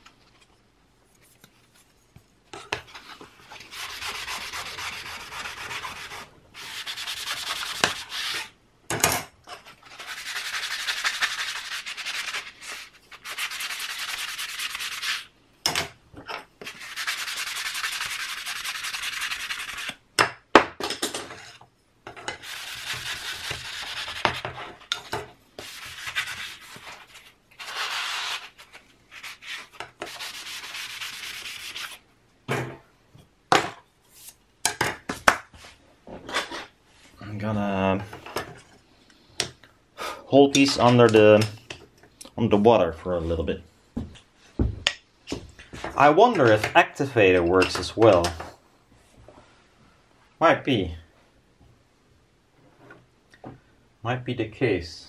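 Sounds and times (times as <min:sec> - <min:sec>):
sanding sponge scrubbing: 0:03.6 - 0:08.4, 0:09.9 - 0:15.3, 0:16.7 - 0:19.9, 0:25.6 - 0:32.0.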